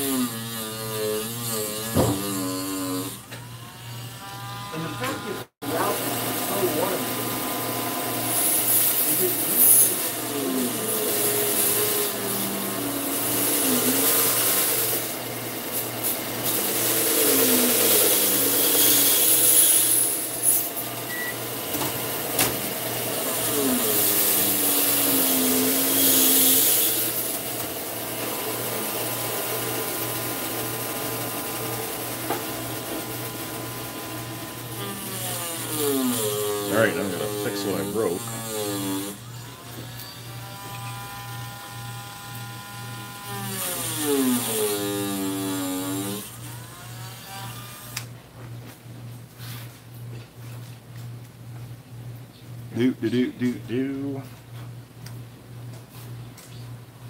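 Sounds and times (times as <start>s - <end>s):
power tool motor whining: 0.0s - 48.1s.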